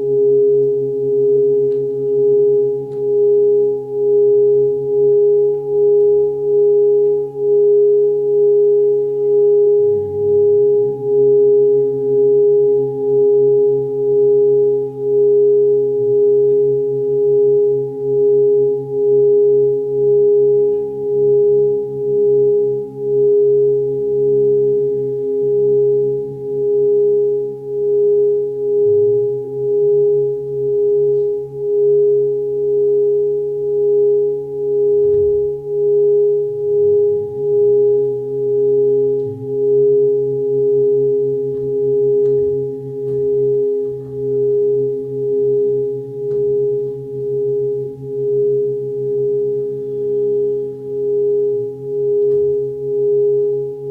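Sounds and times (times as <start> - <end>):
pure meditation drone tone: 0.0 - 53.9
soft low hum: 0.0 - 53.9.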